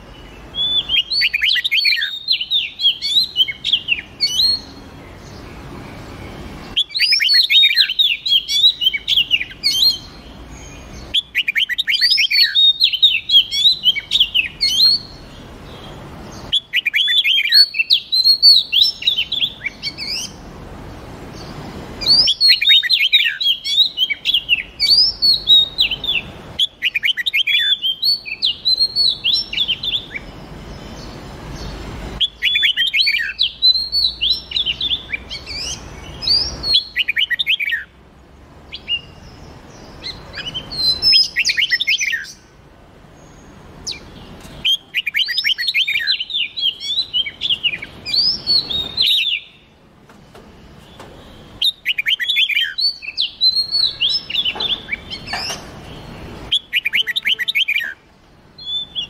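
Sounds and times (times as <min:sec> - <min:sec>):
songbird chirping and whistling: 0:00.0 - 0:20.4, 0:21.4 - 0:37.9, 0:38.7 - 0:42.5, 0:43.2 - 0:59.0.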